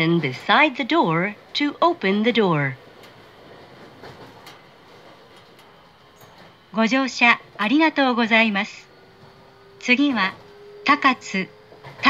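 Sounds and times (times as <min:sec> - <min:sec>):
train car background noise: 0:00.0 - 0:12.0.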